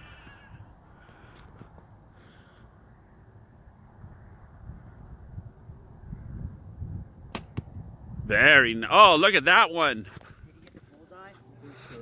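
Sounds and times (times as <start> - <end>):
wind rumbling on microphone: 3.2 - 8.9
bow string snap: 7.3 - 7.7
arrow hitting target: 7.3 - 7.8.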